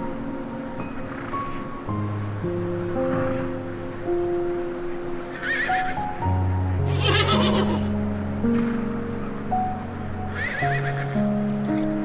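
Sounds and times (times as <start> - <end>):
background music: 0.0 - 12.0
horse whinnying: 6.9 - 8.0.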